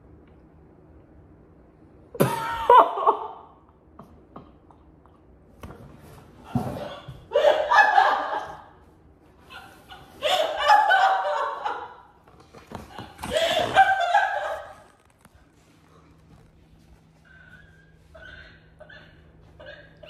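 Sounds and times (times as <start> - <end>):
faint low hum: 0.0 - 20.0
people laughing hard: 7.3 - 8.8, 9.5 - 12.2, 13.0 - 14.9.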